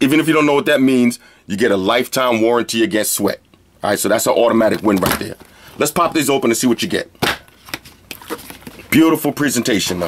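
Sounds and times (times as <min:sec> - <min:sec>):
packaging rustling: 0:04.4 - 0:10.0.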